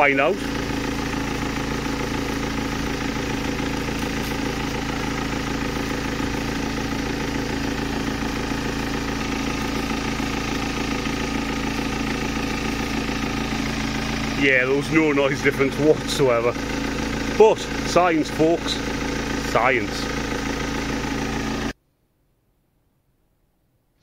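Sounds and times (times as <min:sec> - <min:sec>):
diesel engine idling: 0:00.0 - 0:21.8.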